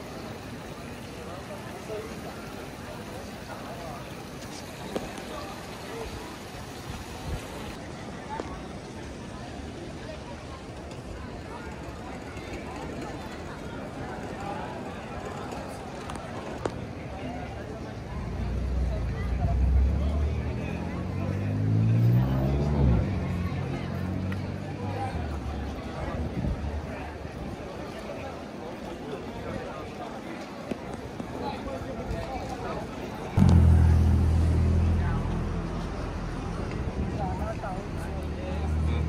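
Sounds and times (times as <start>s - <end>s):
chatter of passers-by: 0.0s - 39.0s
vehicle engine rumbling: 33.3s - 39.0s.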